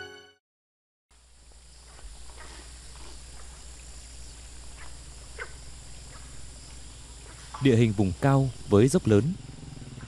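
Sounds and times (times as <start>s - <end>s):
low hum and hiss: 1.1s - 10.0s
faint animal calls: 4.6s - 10.0s.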